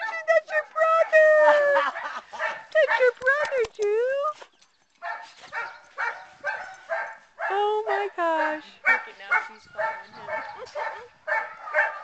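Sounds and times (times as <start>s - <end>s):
dog barking: 1.8s - 3.0s, 5.0s - 7.6s, 8.4s - 12.0s.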